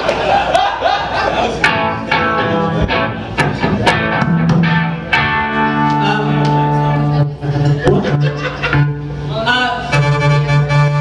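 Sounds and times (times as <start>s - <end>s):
guitar and keyboard ringing chords: 1.6s - 9.3s.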